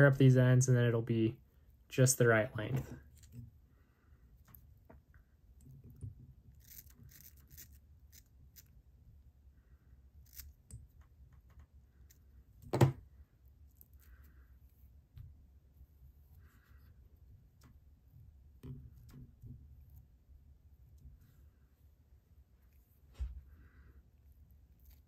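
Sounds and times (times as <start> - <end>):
scissors snipping hair: 6.6 - 8.7.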